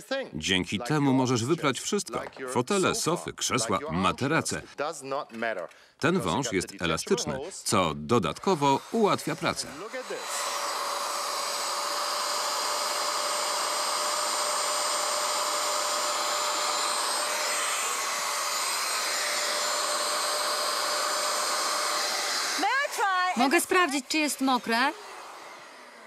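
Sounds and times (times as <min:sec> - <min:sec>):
suction motor whine: 0:08.2 - 0:26.0.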